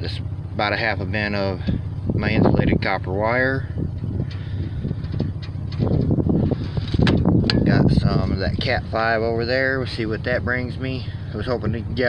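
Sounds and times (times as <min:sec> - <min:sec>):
low outdoor rumble: 0:00.0 - 0:12.0
wind on microphone: 0:03.6 - 0:09.0
sharp clicks and knocks: 0:05.0 - 0:06.2, 0:06.8 - 0:07.7.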